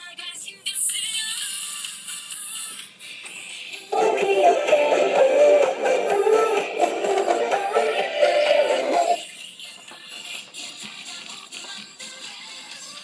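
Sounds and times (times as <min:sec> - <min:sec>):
song through small speaker: 0:00.0 - 0:13.0.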